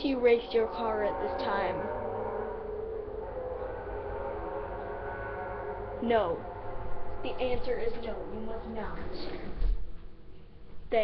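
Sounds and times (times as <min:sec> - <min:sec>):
car engine revving: 0:00.0 - 0:10.8.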